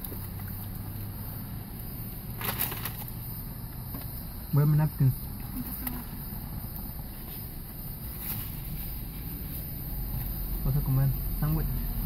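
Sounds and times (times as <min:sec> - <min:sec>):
low car cabin hum: 0:00.0 - 0:12.0.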